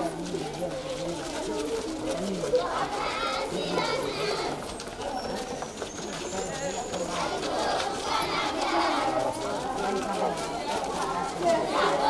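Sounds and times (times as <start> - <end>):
children calling and chanting: 0.0 - 12.0.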